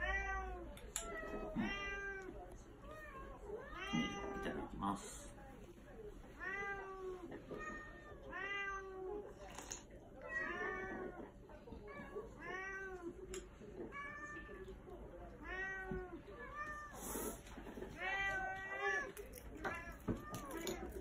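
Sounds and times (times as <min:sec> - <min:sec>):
cats meowing: 0:00.0 - 0:04.8, 0:06.4 - 0:09.2, 0:10.2 - 0:13.2, 0:13.8 - 0:21.0.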